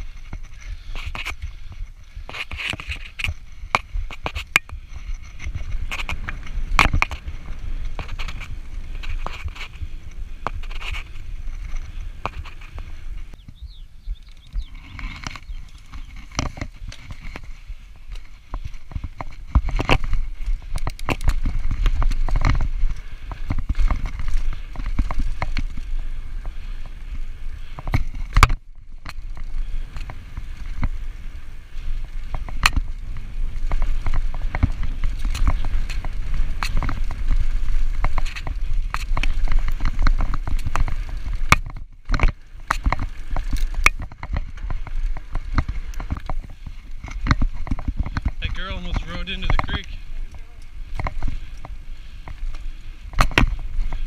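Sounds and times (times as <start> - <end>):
bike chain and frame rattling: 0.0 - 54.0
bike tyres on dry dirt: 0.0 - 54.0
wind rumble on microphone: 0.0 - 54.0.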